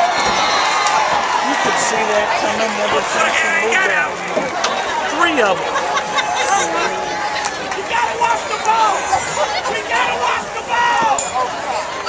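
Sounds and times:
crowd talking and shouting: 0:00.0 - 0:12.0.

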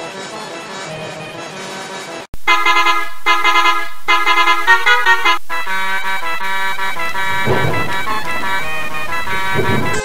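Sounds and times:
bus horn effect with music: 0:00.0 - 0:10.0
multi-tone bus horn tune: 0:02.4 - 0:10.0.

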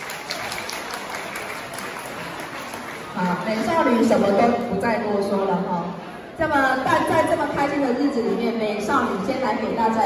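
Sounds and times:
light audience applause: 0:00.0 - 0:04.4.

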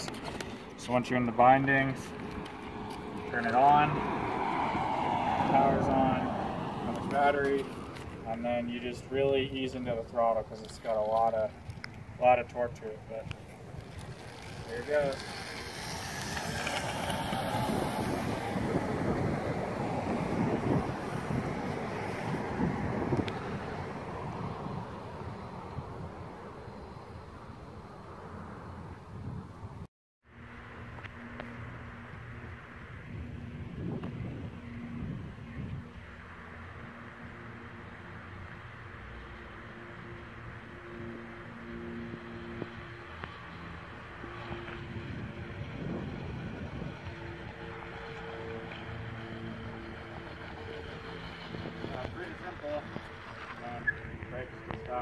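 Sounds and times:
wind buffeting microphone: 0:00.0 - 0:27.9, 0:28.7 - 0:29.9, 0:32.2 - 0:36.2, 0:43.8 - 0:55.0
electric board rolling rumble: 0:13.1 - 0:27.0, 0:39.9 - 0:55.0
steady motor hum: 0:40.8 - 0:55.0.

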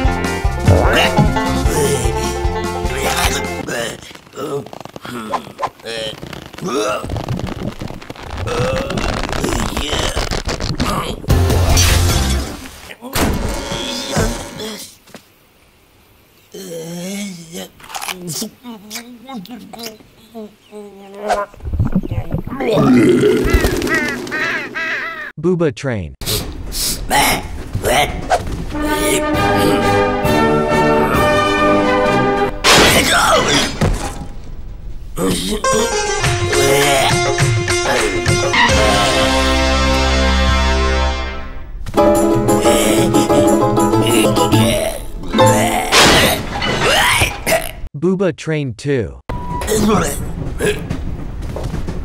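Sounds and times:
cartoon music: 0:00.4 - 0:03.6, 0:42.0 - 0:46.0
fowl honking calls: 0:23.4 - 0:25.3
sliding tones falling in pitch: 0:42.0 - 0:46.0.

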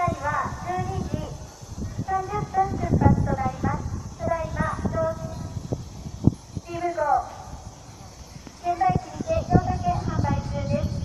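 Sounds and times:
people talking: 0:00.0 - 0:01.4, 0:02.0 - 0:05.4, 0:06.7 - 0:07.3, 0:07.9 - 0:11.0.

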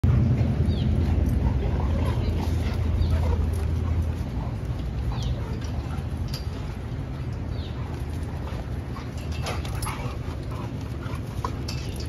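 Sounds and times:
dogs play-growling: 0:00.1 - 0:12.0.

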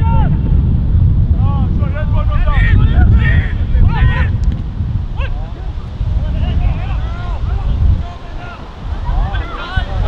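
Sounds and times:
wind buffeting microphone: 0:00.0 - 0:10.0
players shouting: 0:01.9 - 0:04.4, 0:05.1 - 0:10.0.

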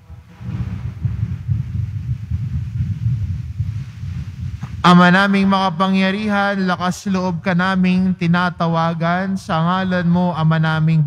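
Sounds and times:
low uneven rumble: 0:00.0 - 0:10.6.

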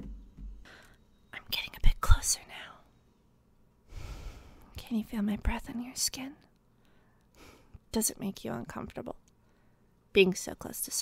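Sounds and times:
woman whispering: 0:01.3 - 0:02.9, 0:04.8 - 0:06.5.

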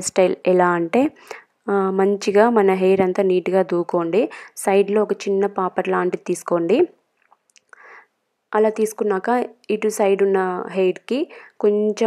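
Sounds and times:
woman speaking: 0:00.0 - 0:07.0, 0:08.5 - 0:12.0.

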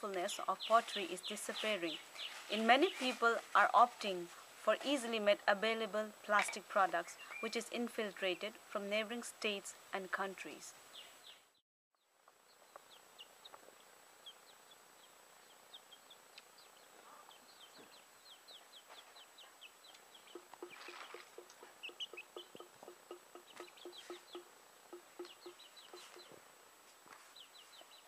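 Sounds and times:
birds chirping: 0:00.0 - 0:03.3, 0:06.3 - 0:09.6, 0:10.3 - 0:26.5, 0:27.2 - 0:28.0
chickens clucking: 0:16.4 - 0:26.4.

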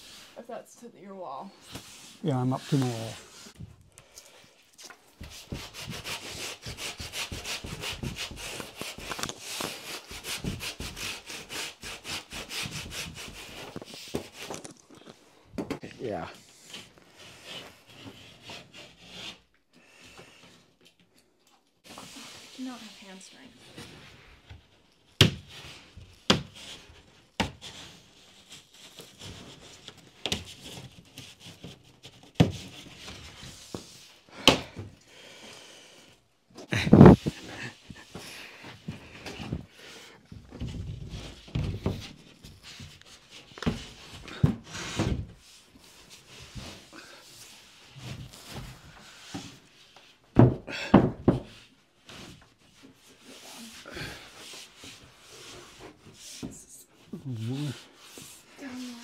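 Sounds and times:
drywall sheet knocking and scraping: 0:05.2 - 0:14.5, 0:25.2 - 0:34.9, 0:36.7 - 0:53.2.

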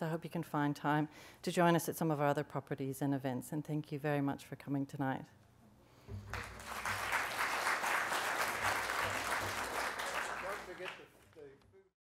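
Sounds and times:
audience applause: 0:06.1 - 0:11.2.

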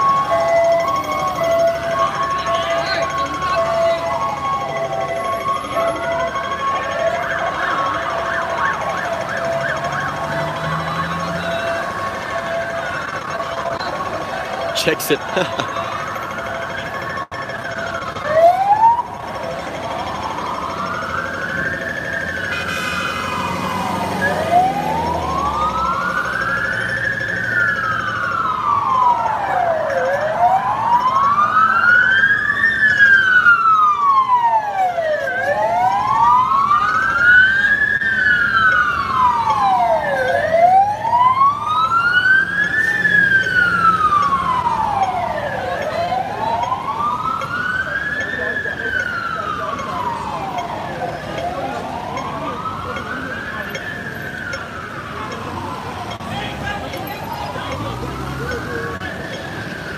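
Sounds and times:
emergency siren wailing: 0:00.0 - 0:59.9.

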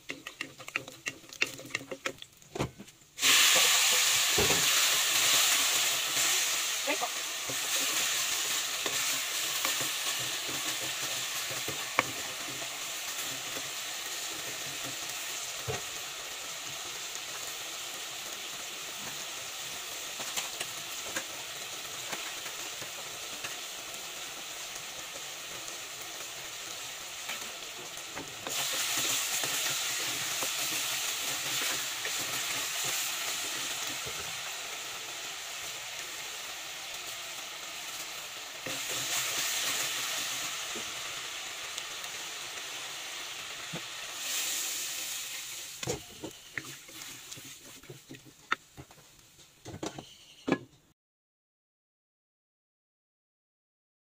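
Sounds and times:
wooden spatula scraping pot: 0:00.0 - 0:02.9
meat sizzling in a pot: 0:00.0 - 0:50.4.

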